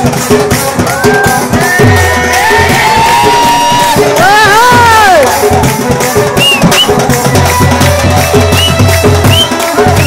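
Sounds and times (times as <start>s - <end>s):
drums keeping a beat: 0.0s - 10.0s.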